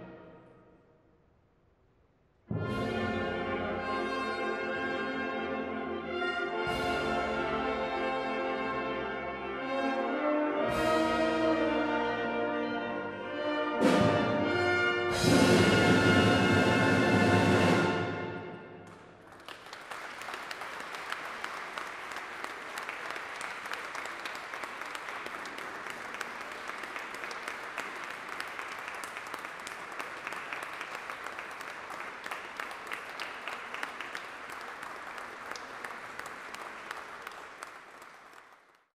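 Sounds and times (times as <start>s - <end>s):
audience applauding: 18.8s - 38.9s.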